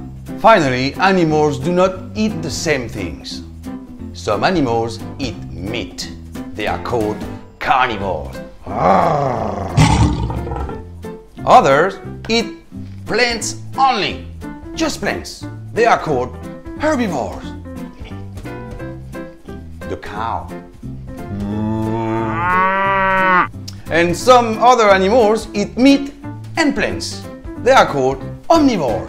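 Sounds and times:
animal growling roar: 8.7 - 10.8, 21.3 - 23.5
cow mooing: 21.3 - 23.5.

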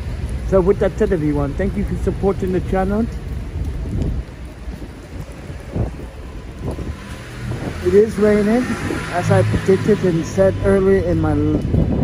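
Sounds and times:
low rumble: 0.0 - 9.7
rain on wet pavement: 0.0 - 12.0.

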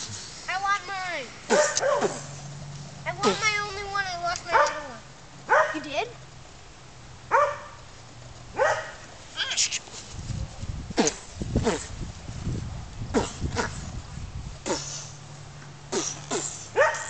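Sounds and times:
high vocal yelps: 9.4 - 9.8.

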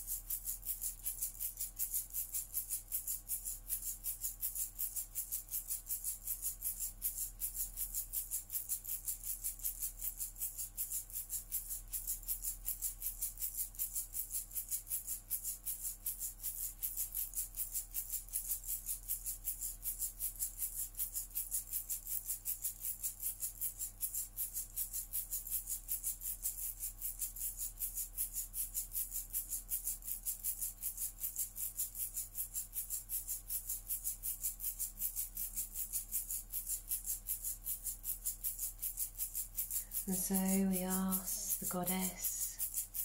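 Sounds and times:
hand rattle shaken fast: 0.0 - 43.0
faint low hum: 38.4 - 43.0.

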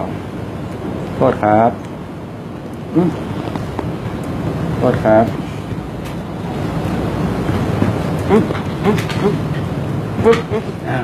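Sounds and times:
low rushing background noise: 0.0 - 11.0.

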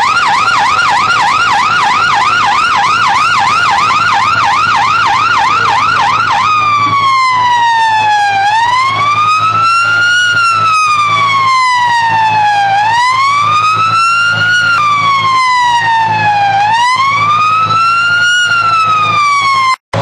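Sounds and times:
fire engine siren: 0.0 - 20.0.

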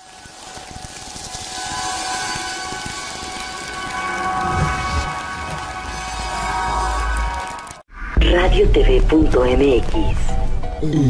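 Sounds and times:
steady high tones: 0.3 - 8.5
low synth swell: 1.5 - 7.8.

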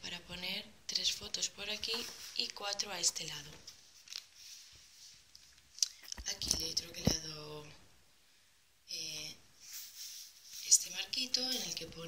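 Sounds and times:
paper pages rustling and turning: 1.7 - 7.2.

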